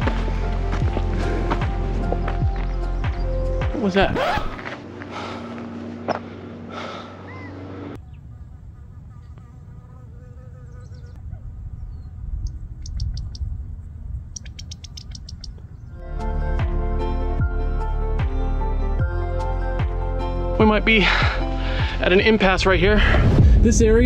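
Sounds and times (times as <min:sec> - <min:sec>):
insects buzzing: 0:04.1 - 0:11.2
low rumble: 0:11.2 - 0:16.1, 0:21.6 - 0:24.0.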